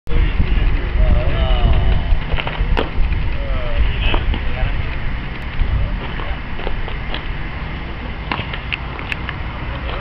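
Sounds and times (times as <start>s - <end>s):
wind rumbling on microphone: 0.1s - 10.0s.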